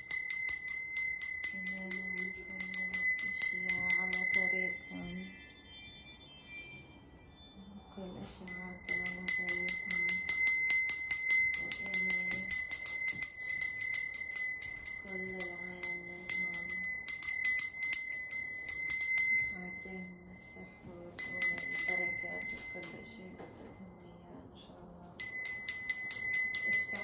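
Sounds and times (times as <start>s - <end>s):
small metal bell ringing rapidly: 0.0s - 7.6s, 8.5s - 20.2s, 21.2s - 23.0s, 25.2s - 27.0s.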